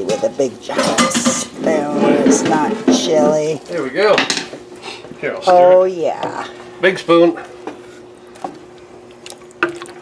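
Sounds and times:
wet squelches of stirring chili: 0:03.5 - 0:10.0.

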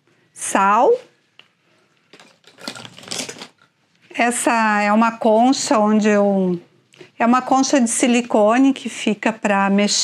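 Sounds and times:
containers clicking and clattering: 0:02.1 - 0:03.8.

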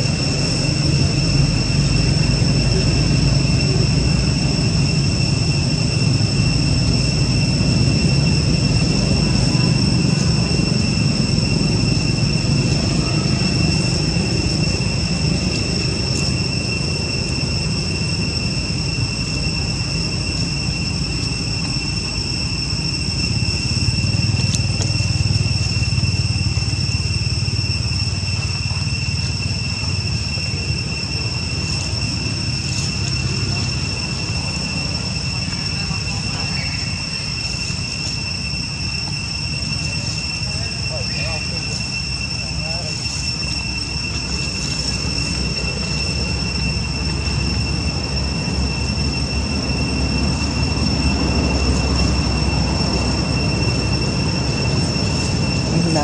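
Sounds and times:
high-pitched insect drone: 0:00.0 - 0:56.0.

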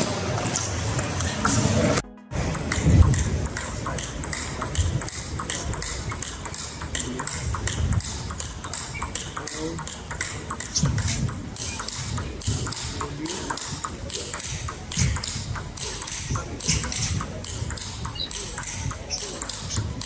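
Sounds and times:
table tennis ball clicks: 0:00.0 - 0:20.0.

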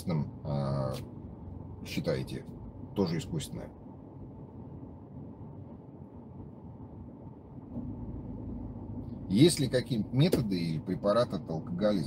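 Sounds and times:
vehicle rumble inside car: 0:00.0 - 0:12.0.

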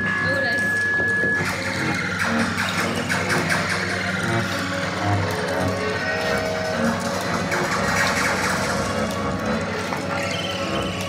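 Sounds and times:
mechanical drone of motors: 0:00.0 - 0:11.0
small clicks and rattles: 0:01.4 - 0:11.0.

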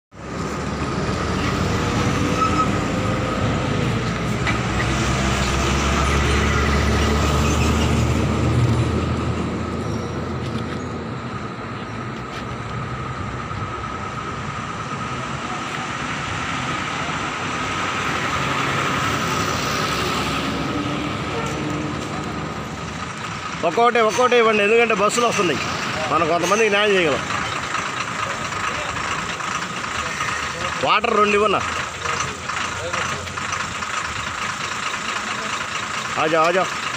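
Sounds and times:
heavy vehicle engine: 0:00.1 - 0:36.9
road noise: 0:00.1 - 0:36.9.

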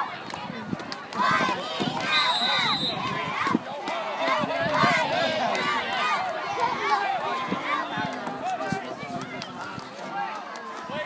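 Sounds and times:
many voices shouting: 0:00.0 - 0:11.0.

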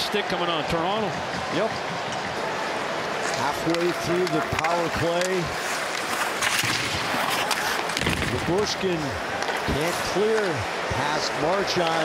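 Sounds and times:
crowd noise: 0:00.0 - 0:12.0
hockey sticks and skates on ice: 0:00.3 - 0:12.0.

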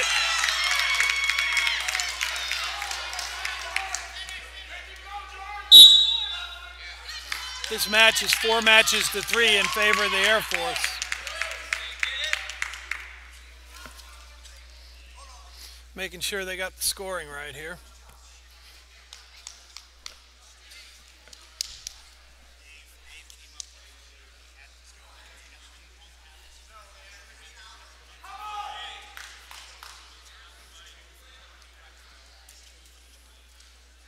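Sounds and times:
people clapping: 0:00.0 - 0:05.2, 0:07.2 - 0:14.0, 0:19.1 - 0:20.2, 0:29.0 - 0:30.8
sharp hand claps: 0:29.2 - 0:30.0.

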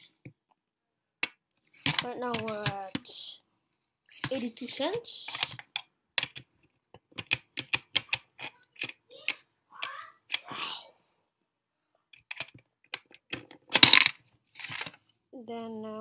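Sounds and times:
coin clattering inside: 0:13.7 - 0:14.9.

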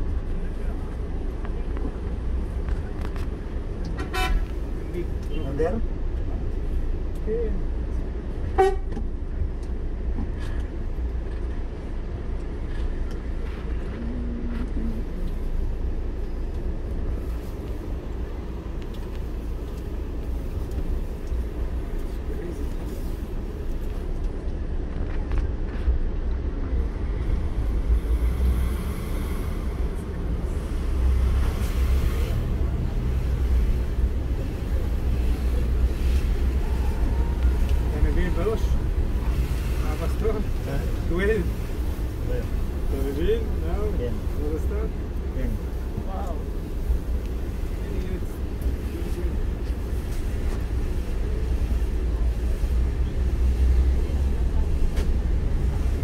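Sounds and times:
car and coach engines running: 0:00.0 - 0:56.0
car horn: 0:04.0 - 0:04.5, 0:08.5 - 0:09.0.

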